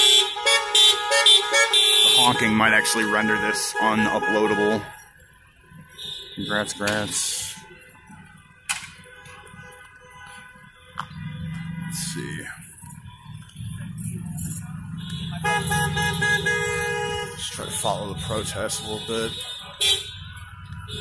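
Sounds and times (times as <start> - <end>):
car horns honking: 0.0 - 21.0
rumble of passing vehicles: 0.0 - 21.0.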